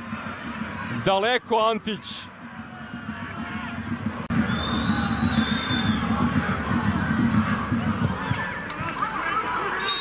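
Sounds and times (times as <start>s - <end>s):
crowd whistling and shouting: 2.6s - 10.0s.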